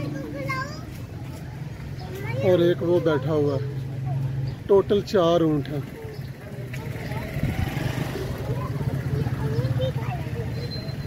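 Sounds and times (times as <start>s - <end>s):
faint voices: 0.0s - 11.0s
vehicle engine running: 2.6s - 11.0s.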